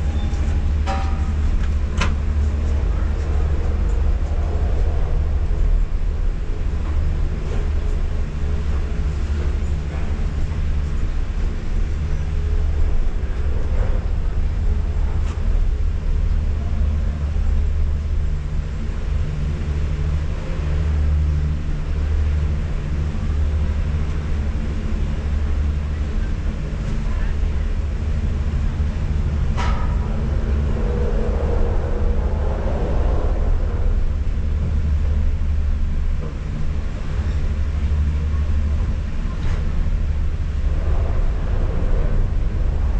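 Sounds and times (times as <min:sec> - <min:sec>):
gondola machinery rumble: 0:00.0 - 0:42.9.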